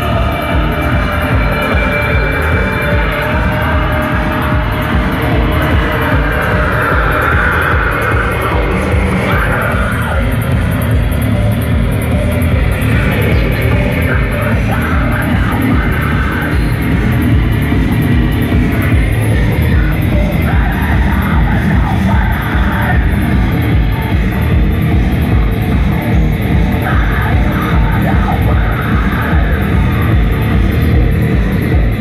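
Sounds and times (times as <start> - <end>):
live electronic rock band: 0.0 - 32.0.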